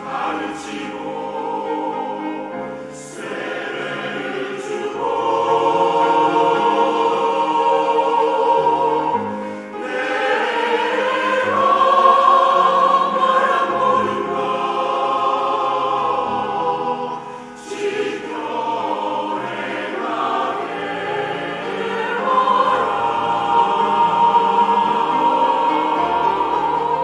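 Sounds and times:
church choir singing: 0:00.0 - 0:27.0
piano accompaniment: 0:00.0 - 0:27.0.

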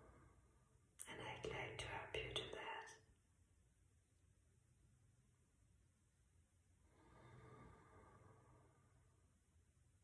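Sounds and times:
woman whispering softly: 0:01.0 - 0:03.0.

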